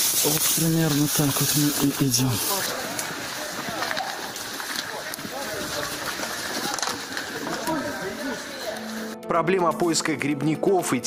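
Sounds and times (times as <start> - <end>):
brush rustling under footsteps: 0.0 - 9.2
people talking indistinctly: 0.2 - 11.0.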